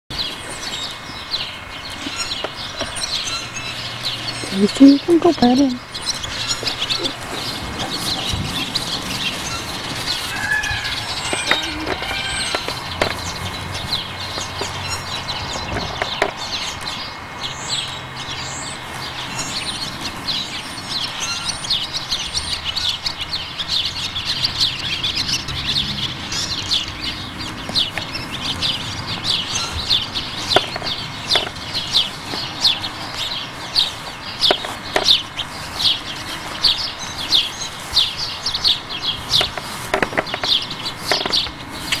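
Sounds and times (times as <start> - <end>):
birds chirping: 0.1 - 42.0.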